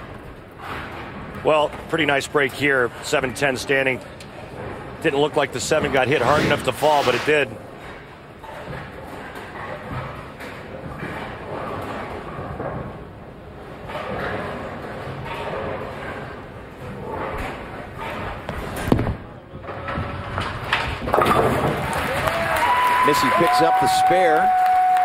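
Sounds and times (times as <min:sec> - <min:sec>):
crowd applause and cheers: 0:21.8 - 0:25.0.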